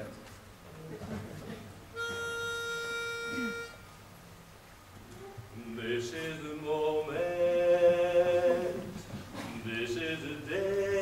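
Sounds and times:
pitch pipe note: 2.0s - 3.9s.

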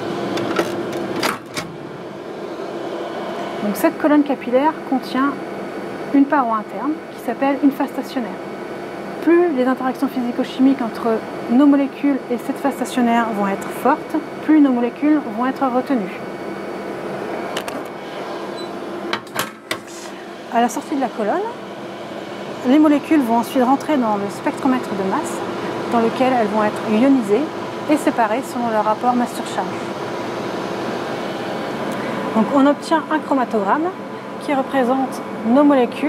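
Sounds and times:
steady machine hum: 0.0s - 36.0s
oven door knocks and clicks: 19.1s - 19.8s.

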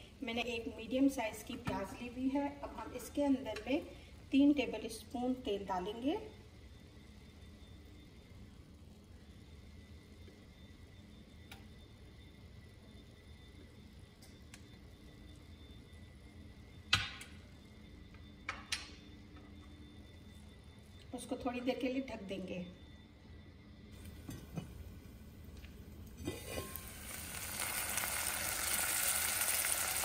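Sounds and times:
faint kitchen hum: 0.0s - 30.0s.

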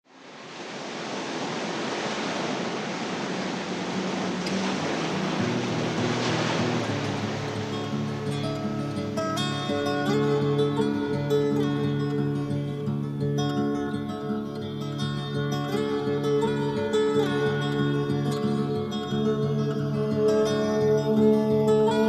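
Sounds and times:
surf noise: 0.0s - 22.0s
acoustic guitar notes: 3.4s - 22.0s.

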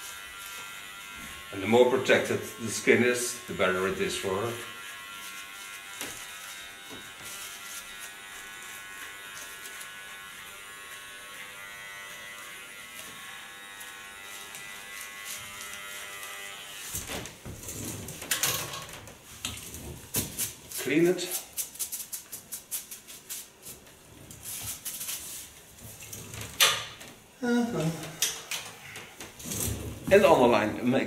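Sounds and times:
electric hair clipper running: 0.0s - 17.4s
knocks and rustles: 16.9s - 20.7s.

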